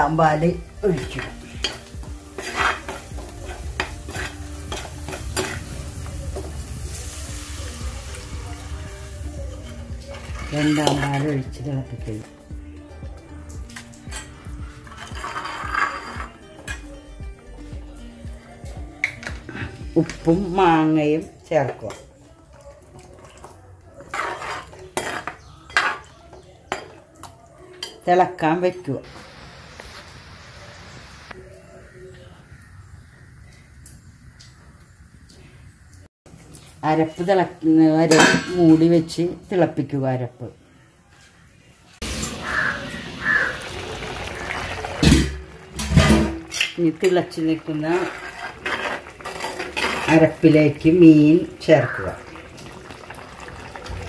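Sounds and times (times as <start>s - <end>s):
light sizzle: 0.0s - 16.8s, 20.0s - 39.6s, 40.6s - 54.0s
metal ladle scraping clay pot: 0.8s - 5.8s, 9.4s - 11.7s, 13.7s - 17.0s, 24.0s - 26.3s, 44.3s - 50.6s.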